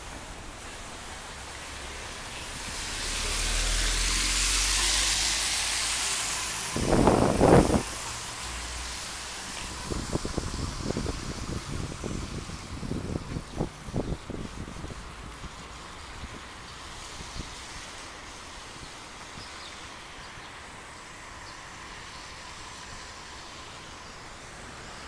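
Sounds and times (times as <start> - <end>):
car passing: 0.0 - 14.0.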